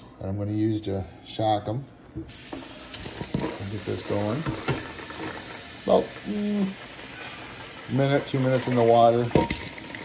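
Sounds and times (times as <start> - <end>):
pot of water boiling: 2.3 - 10.0.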